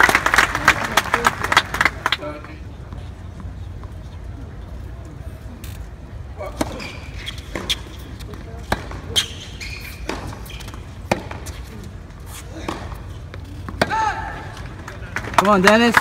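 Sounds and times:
spectators chatting: 0.0s - 16.0s
racket hitting tennis ball: 6.5s - 11.7s, 12.3s - 15.4s
ball bouncing on hard court: 7.5s - 11.6s.

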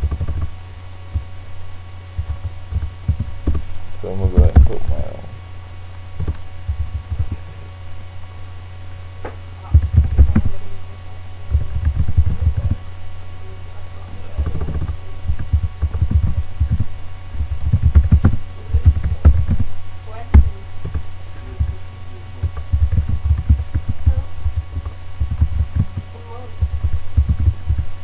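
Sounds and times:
low electrical hum: 0.0s - 28.0s
computer keyboard typing: 14.4s - 19.7s, 22.4s - 26.0s, 26.6s - 27.9s.

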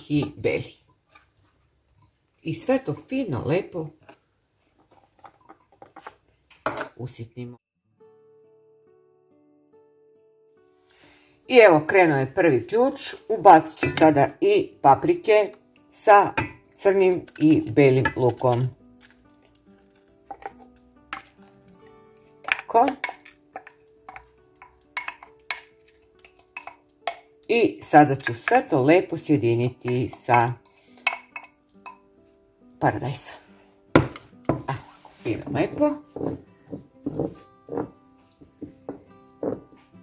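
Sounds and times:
utensil knocking on cooking pot: 16.2s - 18.7s, 22.4s - 27.4s, 34.0s - 34.7s
onion pieces tapping into glass bowl: 22.4s - 27.6s.

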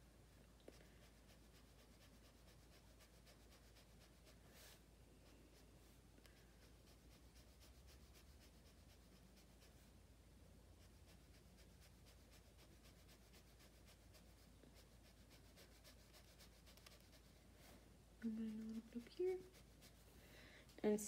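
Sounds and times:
brush pen scratching on paper: 0.8s - 4.8s, 6.3s - 9.8s, 10.8s - 20.1s.

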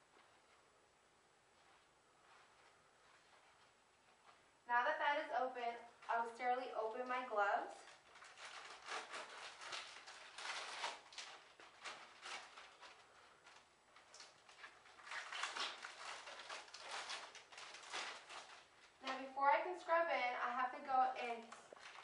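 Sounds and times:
glove package wrapper crinkling: 7.8s - 19.1s, 21.7s - 22.0s.

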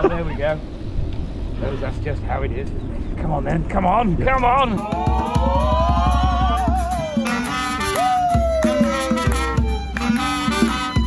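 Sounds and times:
saxophone: 6.0s - 11.0s
violin: 6.9s - 11.0s.

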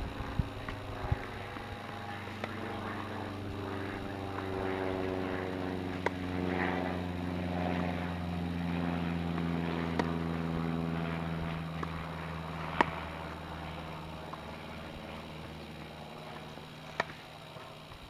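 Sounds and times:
engine hum with falling tones: 0.0s - 18.0s
tennis ball striking racquet: 5.9s - 6.2s, 9.3s - 10.2s, 12.6s - 14.4s, 16.9s - 17.2s.

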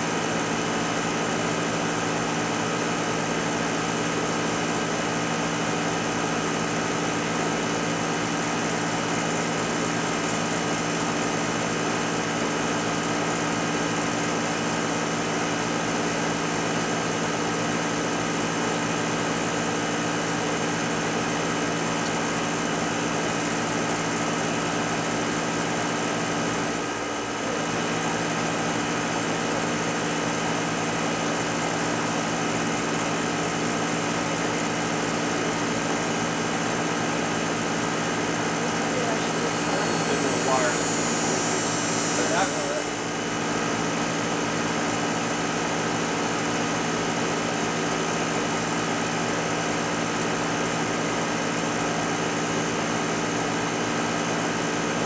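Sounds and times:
machine humming: 20.8s - 49.4s.

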